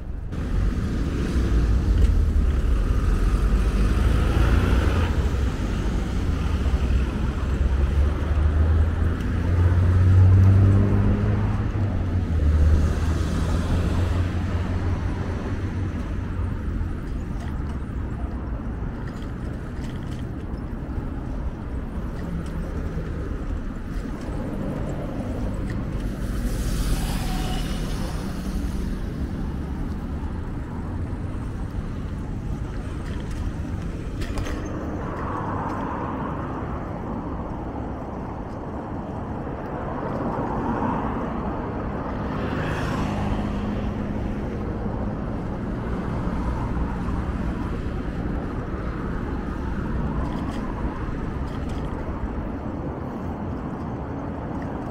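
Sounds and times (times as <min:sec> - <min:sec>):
cars passing: 0:00.0 - 0:54.9.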